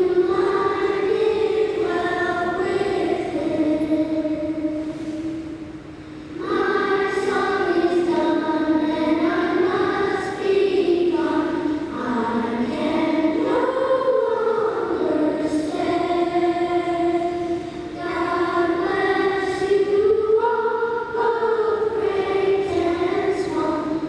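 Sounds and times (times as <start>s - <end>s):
choir singing held notes: 0.0s - 24.0s.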